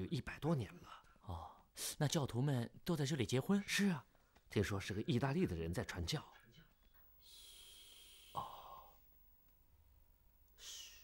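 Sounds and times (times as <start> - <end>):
person exhaling breathily: 10.6 - 11.0.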